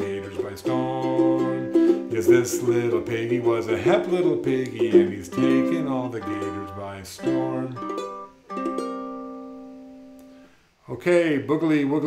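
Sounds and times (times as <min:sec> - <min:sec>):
ukulele chord strummed: 0:00.0 - 0:10.4.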